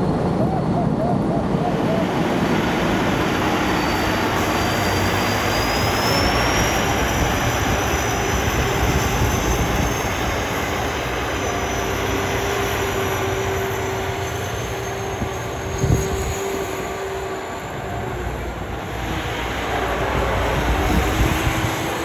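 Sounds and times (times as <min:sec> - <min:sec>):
high turbo whistle: 0:01.5 - 0:22.0.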